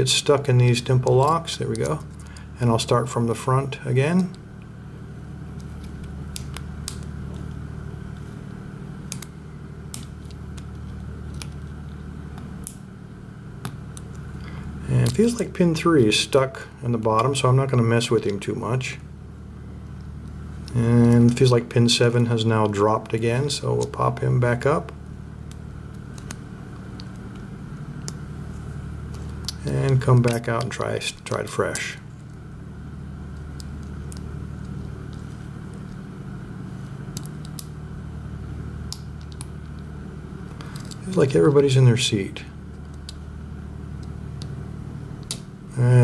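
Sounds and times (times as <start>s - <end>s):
steady low hum: 0.0s - 46.0s.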